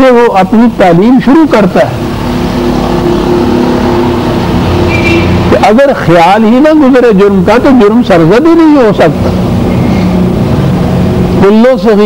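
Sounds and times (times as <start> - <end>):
steady low hum: 0.0 - 12.0
brief high tone: 2.0 - 5.6.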